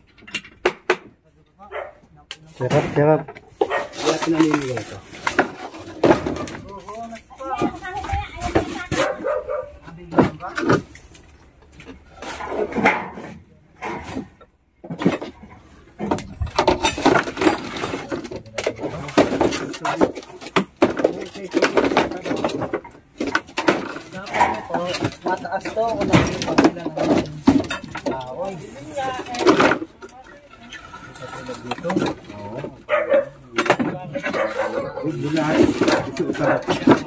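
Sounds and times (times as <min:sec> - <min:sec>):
wooden planks knocking: 0:00.0 - 0:01.2, 0:02.6 - 0:37.0
people talking: 0:01.3 - 0:03.3, 0:04.0 - 0:05.1, 0:06.4 - 0:10.8, 0:17.8 - 0:20.3, 0:20.9 - 0:22.8, 0:24.0 - 0:37.0.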